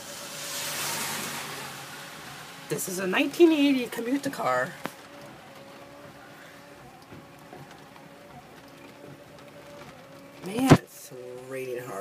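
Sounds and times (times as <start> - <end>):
heavy rain on car roof: 0.0 - 12.0.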